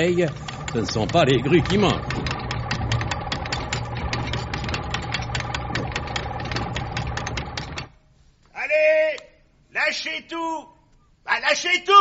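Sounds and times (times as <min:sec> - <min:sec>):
winch motor humming and clicking: 0:00.0 - 0:08.0.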